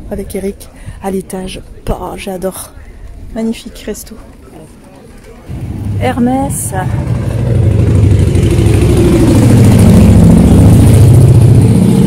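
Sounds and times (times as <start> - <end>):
vehicle engine running: 5.5 - 12.0.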